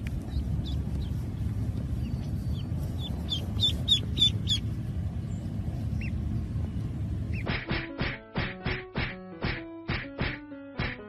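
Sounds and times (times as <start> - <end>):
duckling peeping: 0.0 - 6.3, 7.3 - 11.0
low rumble: 0.0 - 7.7
music of plucked notes: 7.5 - 11.0.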